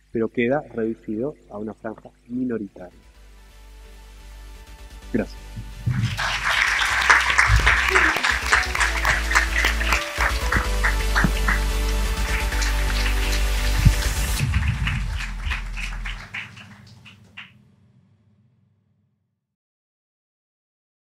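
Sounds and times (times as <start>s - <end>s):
electronic jingle with bass: 5.2s - 17.0s
audience applause: 5.8s - 17.5s.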